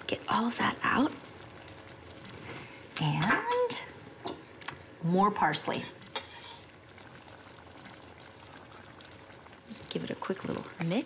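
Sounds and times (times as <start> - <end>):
sauce sizzling in a pot: 0.0 - 11.0.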